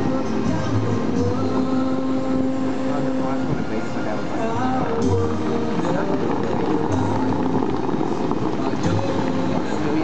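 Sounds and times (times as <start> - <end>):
faint music: 0.0 - 10.0
fountain water spray rushing: 0.0 - 10.0.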